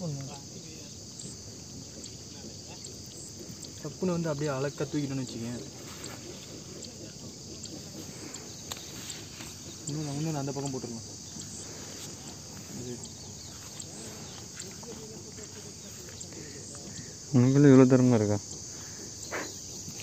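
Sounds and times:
crickets chirring: 0:00.0 - 0:20.0.

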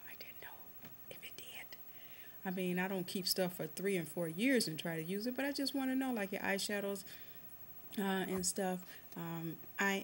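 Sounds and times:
woman whispering: 0:00.0 - 0:01.8.

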